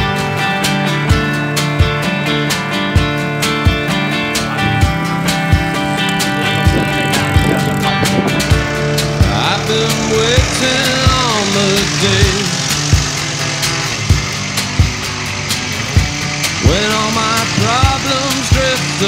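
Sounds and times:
steady drum beat: 0:00.0 - 0:19.0
sliding gliding melody: 0:00.2 - 0:19.0.

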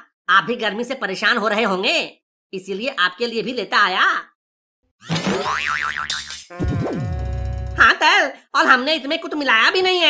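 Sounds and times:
cartoon boing: 0:05.1 - 0:07.9.

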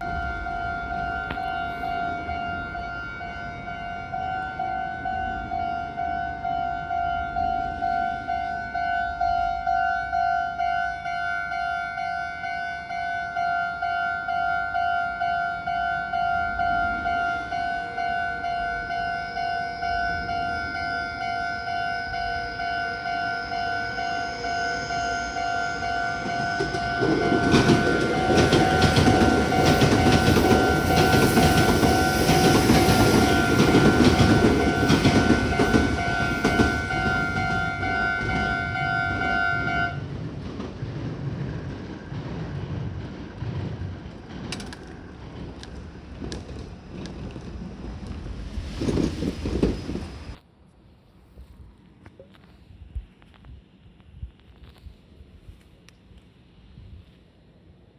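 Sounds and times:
level crossing bell clanging: 0:06.6 - 0:39.9
train wheels clattering on rails: 0:26.1 - 0:50.4.

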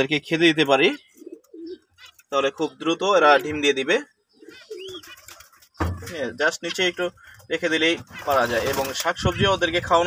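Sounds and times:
pigeon cooing: 0:00.9 - 0:02.8, 0:04.4 - 0:05.5.

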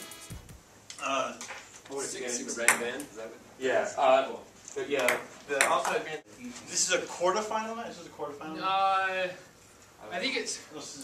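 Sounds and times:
voices in room: 0:00.6 - 0:11.0.

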